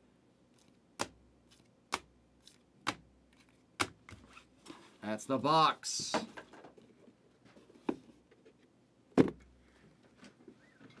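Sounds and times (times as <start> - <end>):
faint squeak: 10.5 - 11.0.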